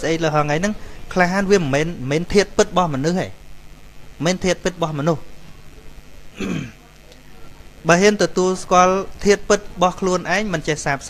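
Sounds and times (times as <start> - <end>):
man clearing his throat: 6.4 - 6.9.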